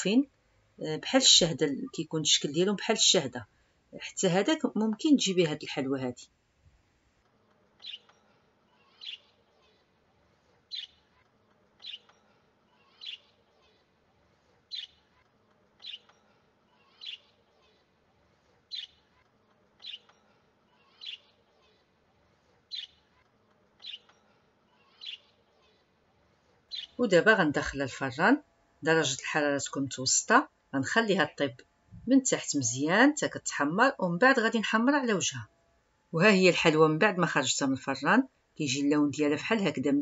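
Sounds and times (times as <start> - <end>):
bird chirping: 7.8 - 9.8, 10.7 - 11.2, 11.8 - 13.8, 14.7 - 15.2, 15.8 - 17.8, 18.7 - 19.2, 19.8 - 21.8, 22.7 - 23.2, 23.8 - 25.8, 26.7 - 27.2.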